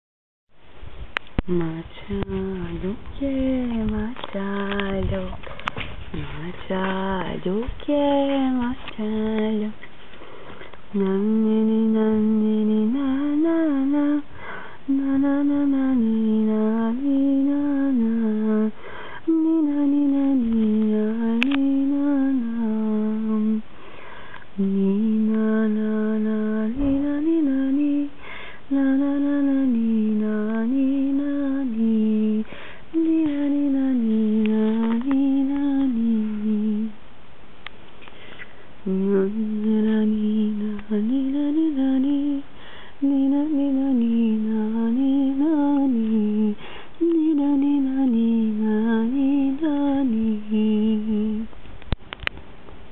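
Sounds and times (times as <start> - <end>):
woman humming: 1.4 - 5.4.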